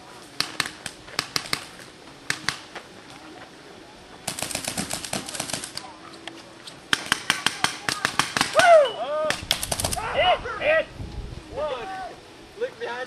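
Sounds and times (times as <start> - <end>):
paintball guns firing rapidly: 0.4 - 2.7, 4.2 - 5.9, 6.9 - 10.1
person shouting: 8.5 - 9.4, 10.0 - 10.9, 11.6 - 12.2.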